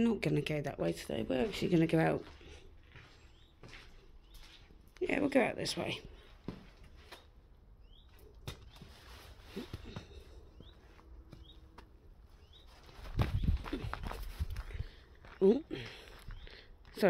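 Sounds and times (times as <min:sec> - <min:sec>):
footsteps on gravel: 0:00.8 - 0:05.0, 0:12.4 - 0:17.0
faint bird chirps: 0:07.8 - 0:11.8, 0:12.4 - 0:14.1.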